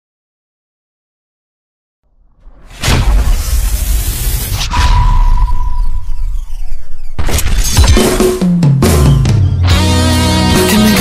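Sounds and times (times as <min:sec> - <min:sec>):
crashing hit with deep rumble: 0:02.2 - 0:08.1
band music: 0:08.4 - 0:11.0.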